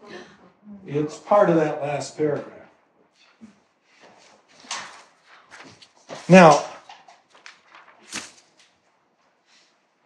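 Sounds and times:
paper rustling: 0:03.9 - 0:09.7.

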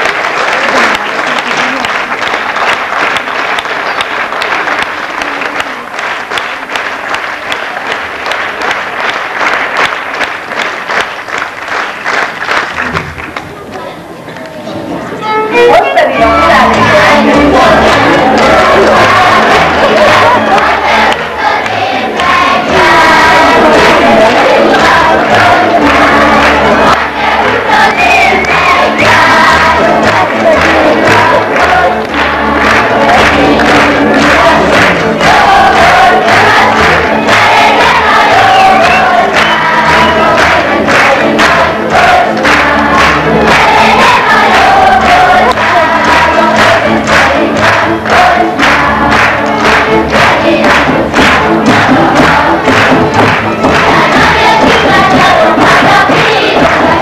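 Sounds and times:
folk band playing dance tune: 0:12.6 - 0:57.0
many voices singing: 0:15.9 - 0:57.0.

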